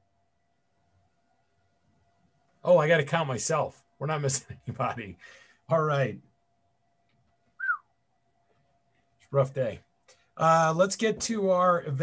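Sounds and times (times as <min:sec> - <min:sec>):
faint steady tone: 0:00.0 - 0:12.0
falling whistle-like tone: 0:07.6 - 0:07.9.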